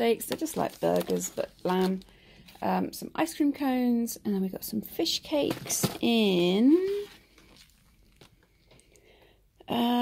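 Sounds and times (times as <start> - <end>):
plastic food tray crinkling: 0.0 - 2.8, 5.3 - 8.5.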